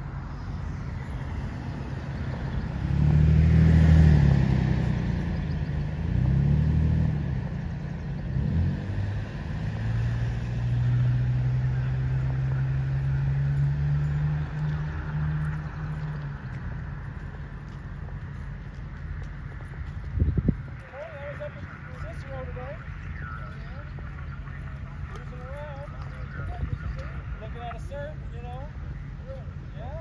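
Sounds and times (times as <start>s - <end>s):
engine running steadily: 0.0s - 30.0s
motor vehicle engine revving: 0.5s - 20.8s.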